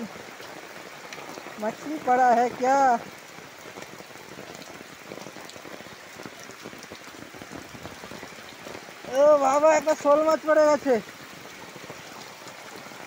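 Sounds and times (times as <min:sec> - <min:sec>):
rain falling on water: 0:00.0 - 0:13.0.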